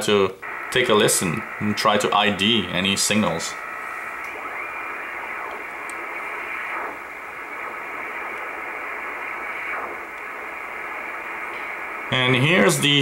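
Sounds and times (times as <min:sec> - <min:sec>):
shortwave radio hiss: 0:00.0 - 0:13.0
radio whistles sweeping in pitch: 0:00.4 - 0:01.8, 0:03.5 - 0:12.7.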